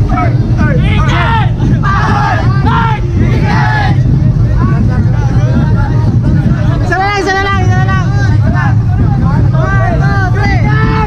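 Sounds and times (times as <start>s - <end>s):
men shouting and cheering: 0.0s - 11.0s
steady low rumble: 0.0s - 11.0s
street crowd babble: 0.0s - 11.0s.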